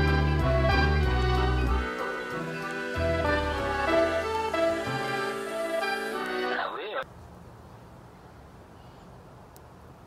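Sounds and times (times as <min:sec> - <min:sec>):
music with sustained notes: 0:00.0 - 0:06.7
faint background noise: 0:00.0 - 0:10.0.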